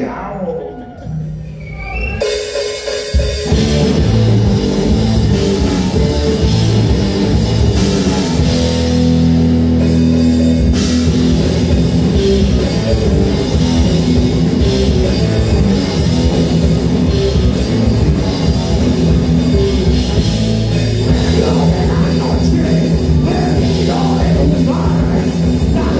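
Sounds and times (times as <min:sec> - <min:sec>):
bass guitar: 0:00.0 - 0:25.9
drum kit: 0:00.0 - 0:25.9
electric guitars: 0:02.2 - 0:25.9.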